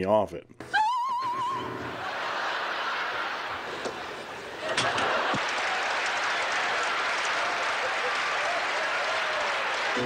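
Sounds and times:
audience applauding: 0:01.9 - 0:10.0.

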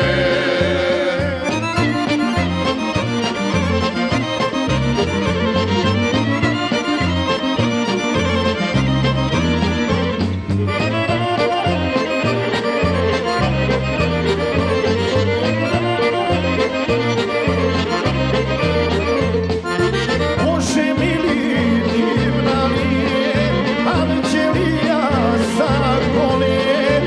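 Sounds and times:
accordion melody: 0:00.0 - 0:27.0
folk ensemble playing: 0:00.0 - 0:27.0.

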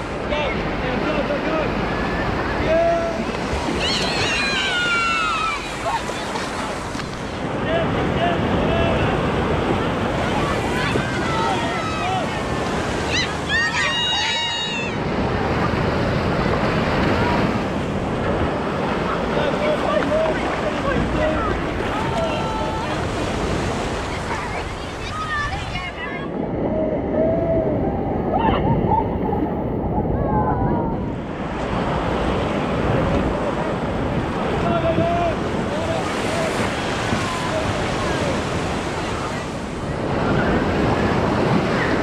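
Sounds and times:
ocean surf washing: 0:00.0 - 0:42.0
wind buffeting microphone: 0:00.0 - 0:42.0.

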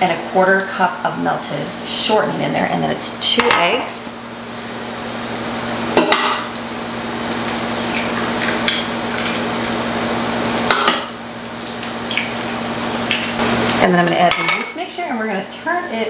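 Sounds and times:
steady hum: 0:00.0 - 0:16.0
eggs knocked and cracked on pan: 0:10.7 - 0:11.1.

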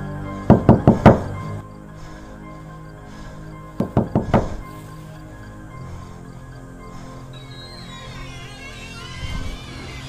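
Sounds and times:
background music with held tones: 0:00.0 - 0:10.0
knocks on a door: 0:00.5 - 0:01.3, 0:03.8 - 0:04.6.

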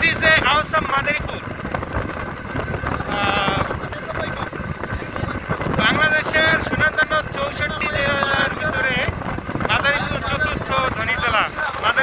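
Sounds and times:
vehicle road noise: 0:00.0 - 0:12.0
wind rushing over microphone: 0:00.0 - 0:12.0.

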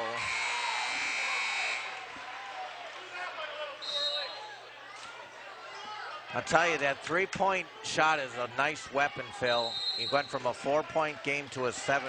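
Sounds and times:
murmur of crowd: 0:00.0 - 0:12.0
referee's whistle blast: 0:03.8 - 0:04.6, 0:09.6 - 0:10.4.

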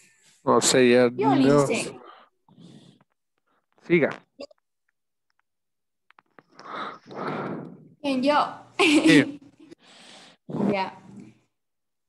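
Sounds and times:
breath into microphone: 0:06.5 - 0:07.9, 0:09.8 - 0:10.5.

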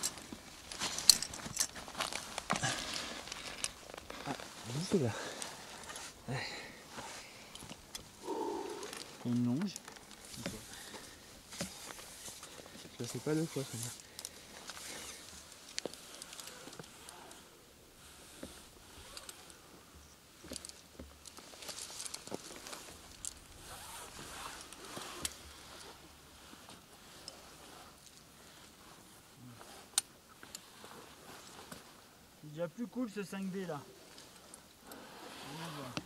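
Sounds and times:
rustling and scraping: 0:00.0 - 0:19.7, 0:20.4 - 0:32.1, 0:33.3 - 0:36.0.

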